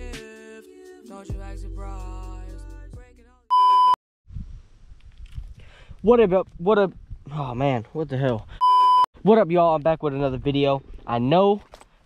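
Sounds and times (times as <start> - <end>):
loud steady beep tone: 3.5 - 4.0, 8.6 - 9.1.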